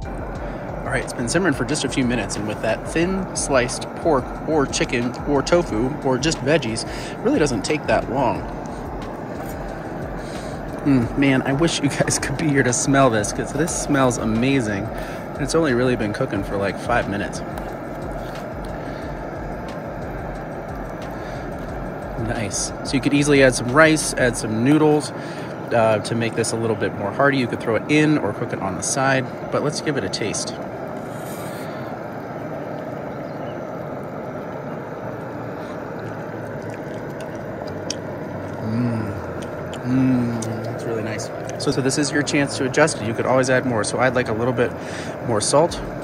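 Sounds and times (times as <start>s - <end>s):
camp stove burner running: 0.0s - 46.0s
soup simmering: 0.0s - 46.0s
person humming: 10.3s - 11.2s, 38.5s - 40.6s.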